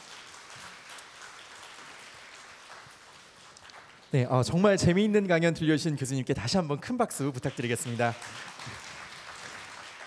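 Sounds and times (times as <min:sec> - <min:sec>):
audience applauding: 0:00.0 - 0:04.2, 0:07.4 - 0:10.0.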